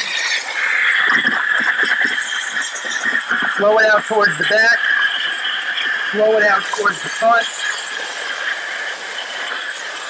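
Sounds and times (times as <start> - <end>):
steam cleaner hissing: 0.0 - 10.0.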